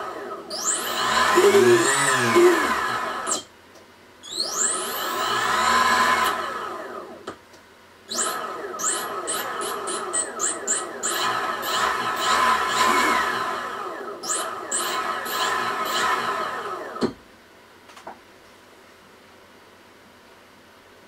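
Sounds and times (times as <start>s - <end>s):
electric motor whining: 0.0s - 3.5s, 4.4s - 7.2s, 8.1s - 17.0s.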